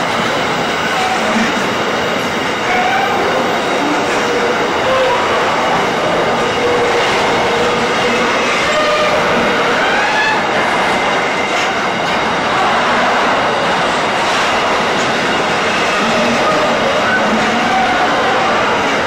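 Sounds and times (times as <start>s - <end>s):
freight train wheels rumbling: 0.0s - 19.0s
wheels squealing: 0.5s - 13.6s, 14.3s - 19.0s.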